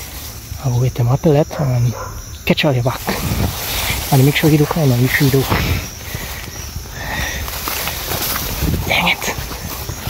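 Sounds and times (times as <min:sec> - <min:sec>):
footsteps through grass: 0:02.8 - 0:10.0
microphone handling bumps: 0:02.9 - 0:10.0.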